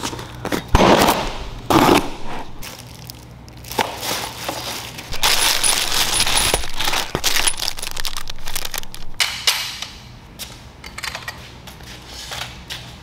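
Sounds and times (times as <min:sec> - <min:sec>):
plastic packaging crinkling: 0:02.4 - 0:09.2
metal parts clicking and clinking: 0:05.1 - 0:09.9.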